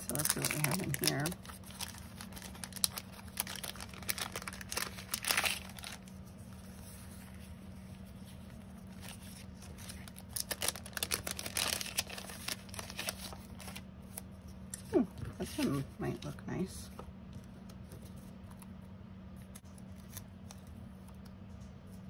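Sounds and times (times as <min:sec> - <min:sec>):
plastic sleeve crinkling: 0:00.0 - 0:14.3.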